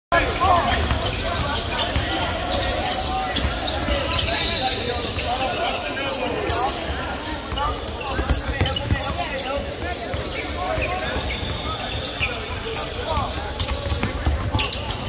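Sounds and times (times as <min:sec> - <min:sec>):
indistinct chatter of voices: 0:00.1 - 0:15.0
basketballs bouncing on hardwood: 0:13.2 - 0:15.0.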